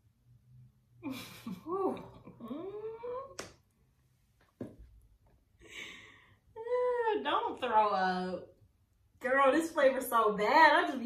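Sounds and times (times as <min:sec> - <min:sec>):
woman laughing: 0:01.0 - 0:03.2.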